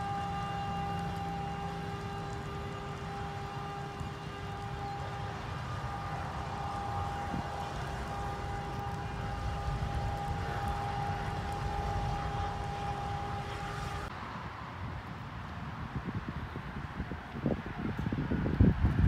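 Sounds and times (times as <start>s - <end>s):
steady high-pitched tone: 0.0s - 14.1s
wind on microphone: 0.0s - 14.1s, 14.8s - 19.0s
traffic rumble: 0.0s - 19.0s.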